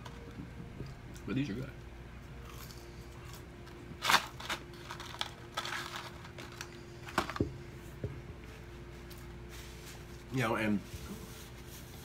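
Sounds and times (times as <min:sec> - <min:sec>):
faint steady hum: 0:00.0 - 0:12.0
paper packaging crinkling: 0:04.0 - 0:07.4.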